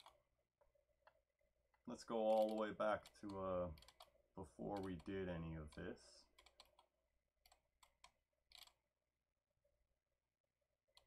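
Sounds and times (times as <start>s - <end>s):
computer mouse clicks: 0.0s - 0.2s, 2.3s - 4.1s, 4.7s - 8.8s.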